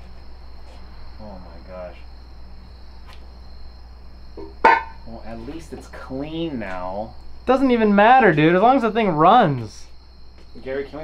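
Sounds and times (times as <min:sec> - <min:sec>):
crickets chirring: 0:00.0 - 0:11.0
low background hum: 0:00.0 - 0:11.0.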